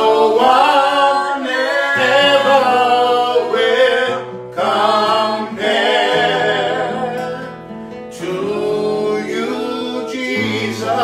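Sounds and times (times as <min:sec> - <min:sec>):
men singing gospel song: 0:00.0 - 0:11.0.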